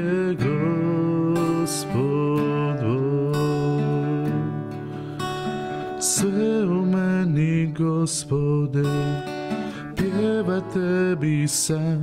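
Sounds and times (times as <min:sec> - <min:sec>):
person singing worship song: 0:00.0 - 0:04.9, 0:05.9 - 0:12.0
acoustic guitar: 0:00.0 - 0:12.0.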